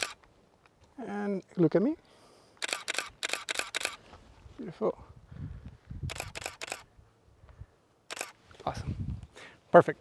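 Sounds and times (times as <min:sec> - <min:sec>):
camera shutter clicks: 0:00.0 - 0:00.2, 0:02.6 - 0:04.0, 0:06.1 - 0:06.9, 0:08.1 - 0:08.4.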